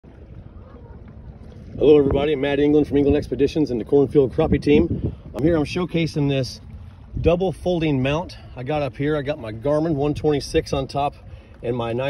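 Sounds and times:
low rumble over water: 0.0s - 12.0s
wind on microphone: 0.1s - 8.5s.

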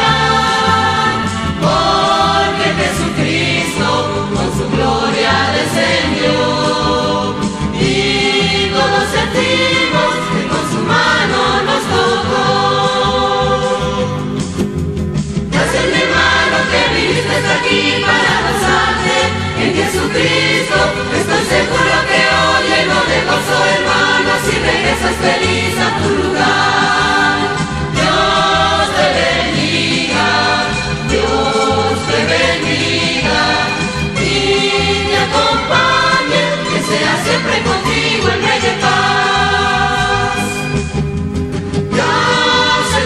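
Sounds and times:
vocal group singing a hymn: 0.0s - 14.6s, 15.4s - 41.0s, 41.7s - 43.0s
instrumental accompaniment: 0.0s - 43.0s.

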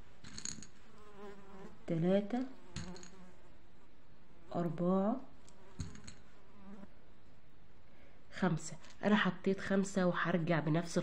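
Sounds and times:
faint steady buzzing: 0.0s - 9.1s.

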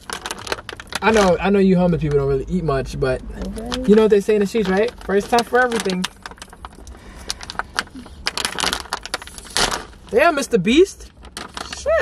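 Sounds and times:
plastic wrapper crinkling and tearing: 0.0s - 2.4s, 3.4s - 12.0s.

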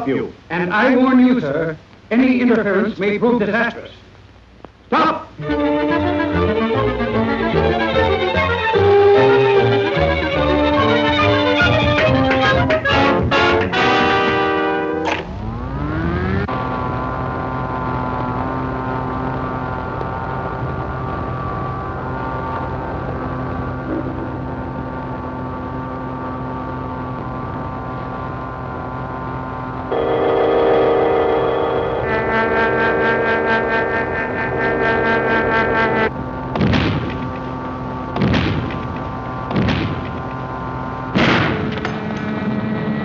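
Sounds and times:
electrical hum: 0.0s - 43.0s
rising electrical whine: 5.4s - 43.0s.

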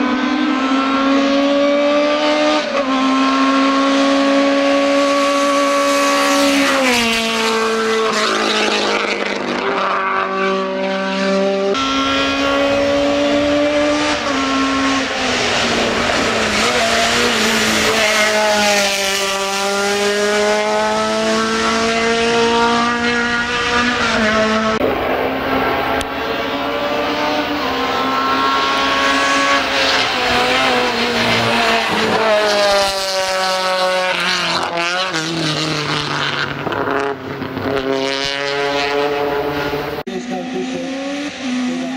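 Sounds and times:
rally car engine revving: 0.0s - 41.9s.

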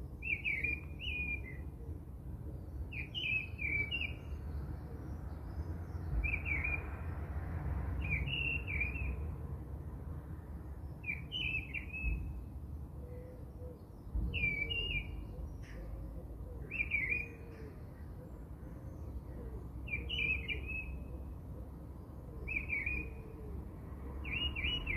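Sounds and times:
bird chirping: 0.0s - 1.8s, 2.6s - 7.0s, 8.0s - 9.2s, 10.8s - 12.5s, 13.1s - 21.3s, 21.9s - 23.4s, 24.2s - 24.9s.

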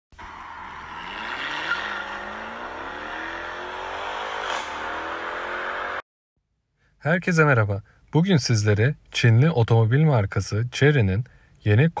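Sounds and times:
car engine accelerating: 0.2s - 6.0s.

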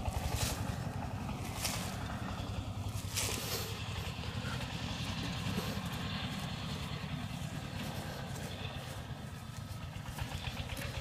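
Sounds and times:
hands scraping through dry soil: 0.0s - 11.0s
steady low rumble: 0.0s - 11.0s.

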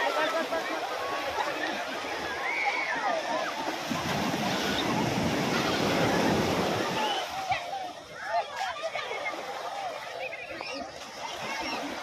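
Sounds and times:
waves breaking on beach: 0.0s - 12.0s.

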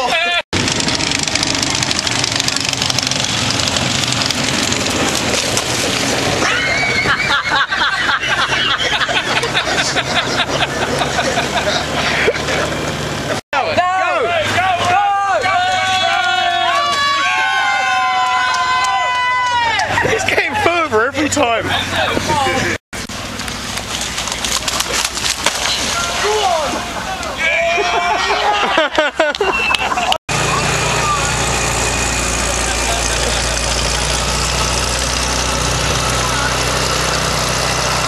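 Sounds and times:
running footsteps slapping through mud: 0.6s - 7.0s, 23.2s - 27.3s
low engine hum: 0.6s - 13.4s, 18.0s - 38.0s
onlookers' voices and calls: 4.7s - 22.8s, 23.7s - 38.0s
people chattering and laughing: 6.2s - 13.4s, 19.7s - 22.8s, 25.8s - 34.8s.

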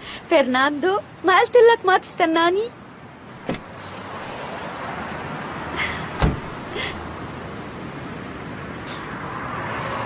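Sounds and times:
car park background noise: 0.0s - 9.5s
sharp thump: 3.4s - 3.7s, 6.2s - 6.5s.

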